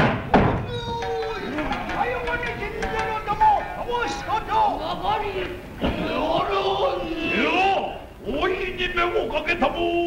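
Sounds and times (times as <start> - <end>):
sharp percussion strikes: 0.6 - 4.4.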